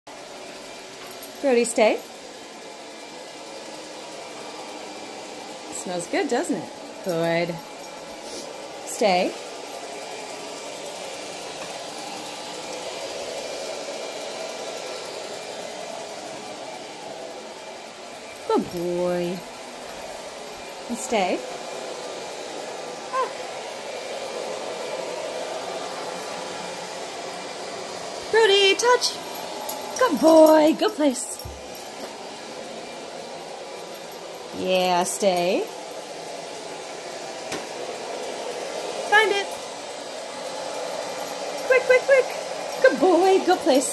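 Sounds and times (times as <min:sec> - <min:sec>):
robot vacuum cleaner whirring: 0:00.2 - 0:43.9.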